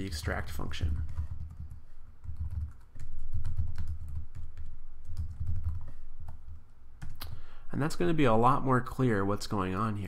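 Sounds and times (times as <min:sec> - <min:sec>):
typing on computer keyboard: 0:00.8 - 0:07.4.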